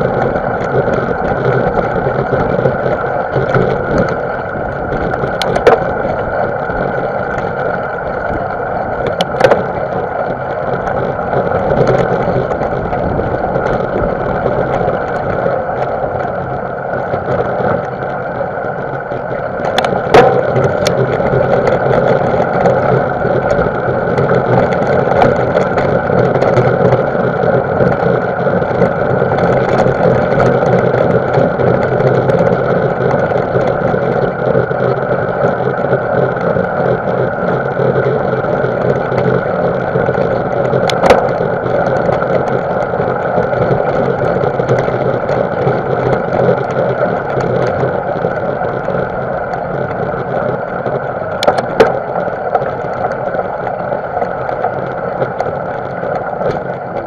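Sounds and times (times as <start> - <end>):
bike tyres rolling over gravel: 0.0 - 57.0.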